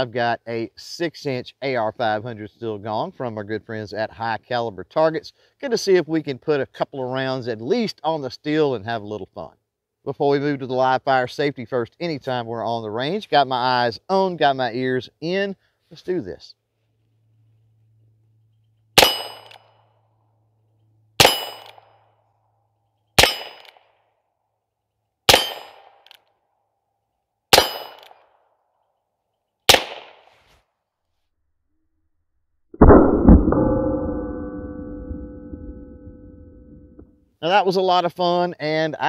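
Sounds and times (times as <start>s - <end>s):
revolver gunshots: 19.0s - 19.6s, 21.2s - 21.8s, 23.2s - 23.8s, 25.3s - 26.1s, 27.6s - 28.1s, 29.7s - 30.2s
bullets striking steel plate: 19.0s - 19.7s, 21.2s - 22.0s, 23.2s - 23.8s, 25.3s - 26.2s, 27.5s - 28.2s
deep ringing boom: 32.8s - 37.1s.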